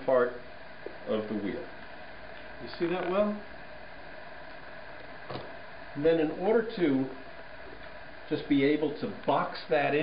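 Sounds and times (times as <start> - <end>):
potter's wheel humming: 0.0 - 10.0.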